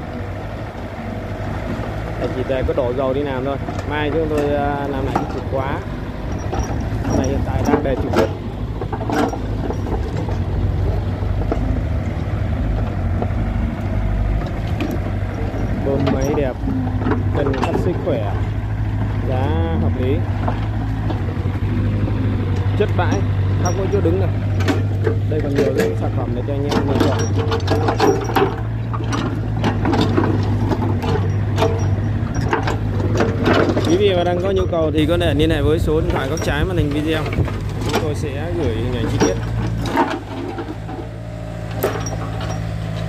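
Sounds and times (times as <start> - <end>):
excavator diesel engine running: 0.0 - 43.0
metallic clanks and knocks: 1.5 - 43.0
bucket digging soil: 35.0 - 43.0.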